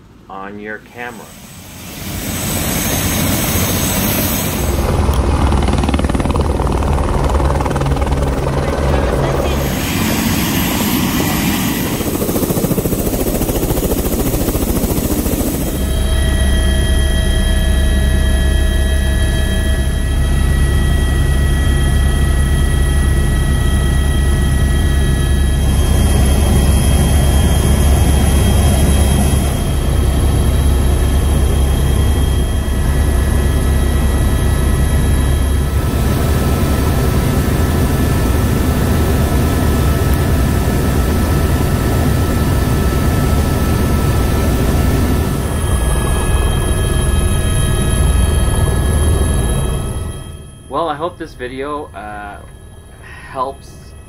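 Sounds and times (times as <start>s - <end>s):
helicopter rotor and engine drone: 0.0s - 54.0s
steady whining tones: 0.0s - 54.0s.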